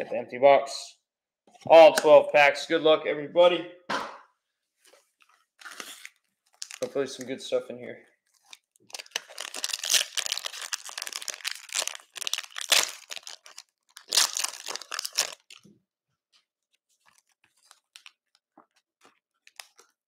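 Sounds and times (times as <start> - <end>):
foil wrappers crinkling: 5.6 - 7.2, 8.4 - 15.6.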